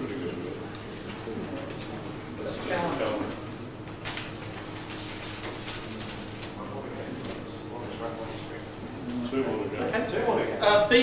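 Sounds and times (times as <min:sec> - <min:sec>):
murmur of voices in a hall: 0:00.0 - 0:11.0.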